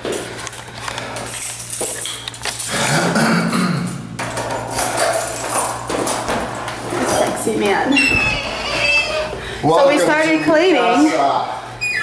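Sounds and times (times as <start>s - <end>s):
keys jingling in a door lock: 1.2s - 3.0s, 3.9s - 6.3s.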